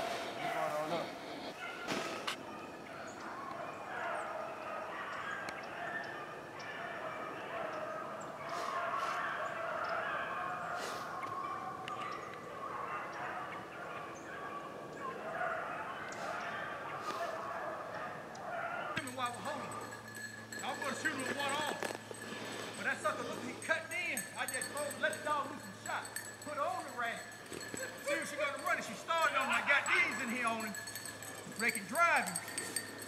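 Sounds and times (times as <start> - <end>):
dogs baying: 0.0 - 33.0.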